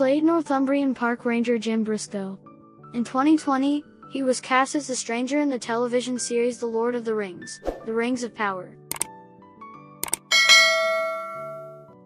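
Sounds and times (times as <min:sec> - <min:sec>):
quick double click: 0:10.0 - 0:10.3
bright bell ding: 0:10.1 - 0:12.0.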